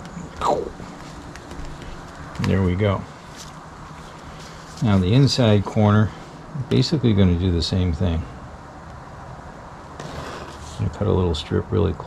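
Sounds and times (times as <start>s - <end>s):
material rustling and ticking: 0.9s - 5.3s.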